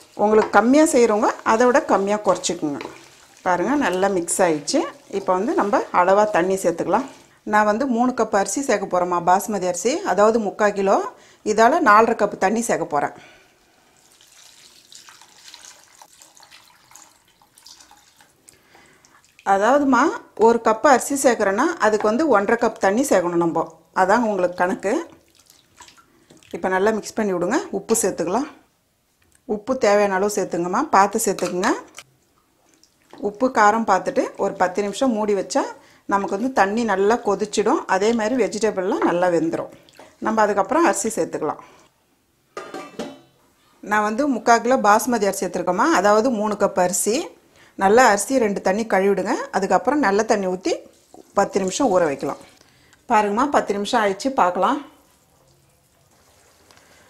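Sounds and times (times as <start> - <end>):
woman speaking: 0.2 - 2.9, 3.5 - 13.1, 33.2 - 41.6, 51.4 - 52.5, 53.1 - 54.9
water pouring onto hot vegetables: 13.8 - 18.4, 55.0 - 57.0.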